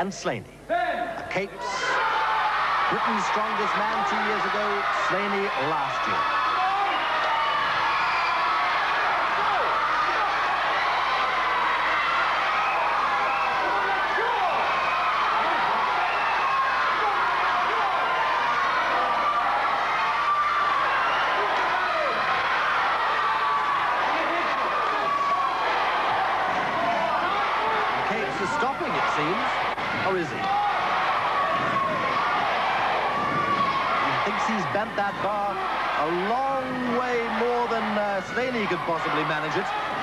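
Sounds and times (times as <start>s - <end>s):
audience shouting and cheering: 0.7s - 40.0s.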